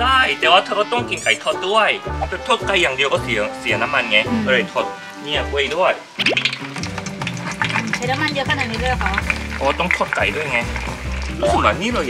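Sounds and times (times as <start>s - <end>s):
background music: 0.0s - 12.0s
food sizzling in hot oil: 0.0s - 12.0s
metal spatula stirring: 6.4s - 11.9s.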